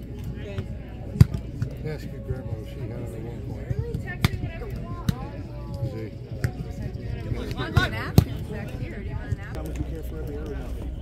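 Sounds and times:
voices of players and onlookers: 0:00.0 - 0:11.0.

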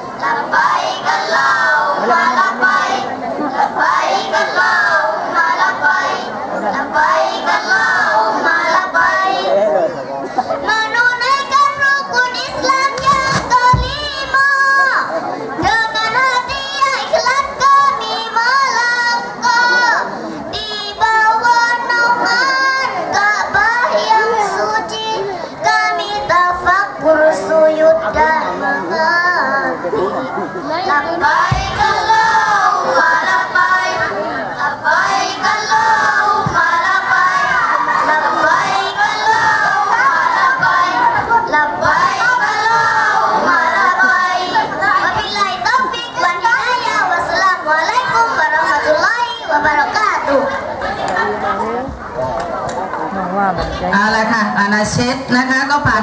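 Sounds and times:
children singing into a microphone: 0:00.0 - 0:52.6.

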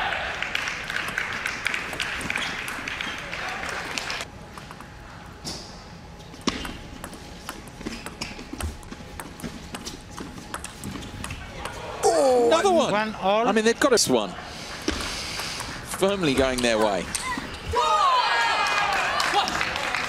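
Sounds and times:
crowd applause and cheering: 0:00.0 - 0:04.3, 0:17.8 - 0:20.0
table tennis ball ticking: 0:06.5 - 0:11.8, 0:15.3 - 0:17.0.

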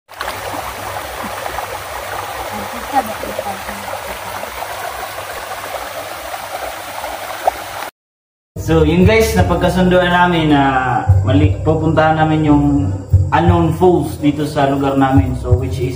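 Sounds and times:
stream running over stones: 0:00.1 - 0:07.9.

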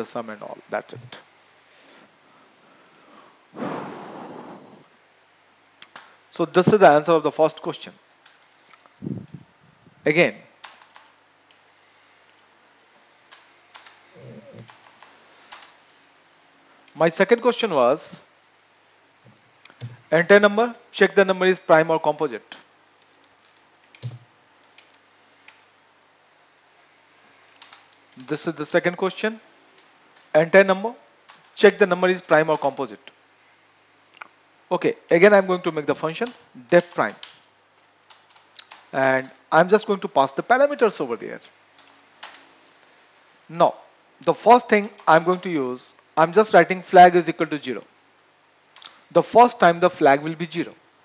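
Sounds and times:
faint low murmur: 0:13.9 - 0:15.5
computer keys clicking: 0:19.2 - 0:20.2, 0:23.4 - 0:25.6, 0:27.3 - 0:27.9.

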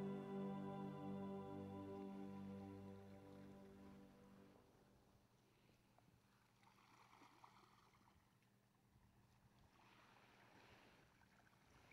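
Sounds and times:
low hum: 0:00.0 - 0:05.0
faint steady hiss: 0:00.0 - 0:06.6.

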